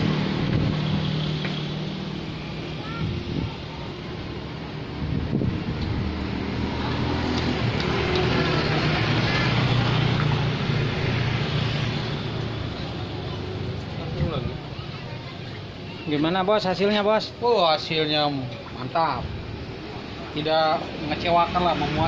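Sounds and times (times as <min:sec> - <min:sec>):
vehicle engine passing: 0:00.0 - 0:03.5, 0:04.2 - 0:14.8.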